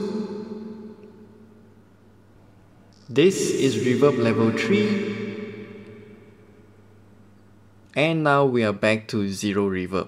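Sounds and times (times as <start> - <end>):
reverb tail of man's voice: 0.0 - 1.4, 3.0 - 6.6
faint low hum: 0.0 - 10.0.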